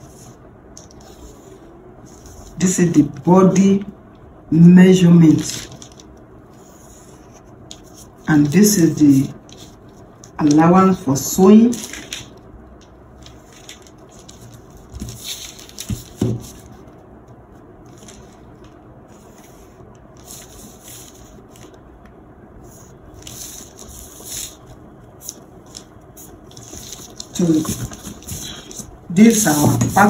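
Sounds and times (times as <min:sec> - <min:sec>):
marker scratching on paper: 0:27.4 - 0:30.0.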